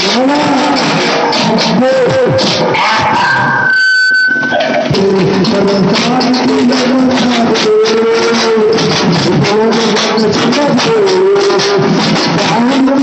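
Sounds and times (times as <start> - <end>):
drums beaten with sticks: 0.0 - 3.7, 4.6 - 13.0.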